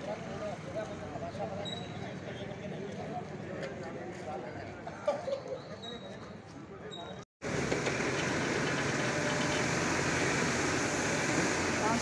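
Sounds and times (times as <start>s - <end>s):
truck pump running: 7.4s - 12.0s
hiss of spraying hose: 7.6s - 12.0s.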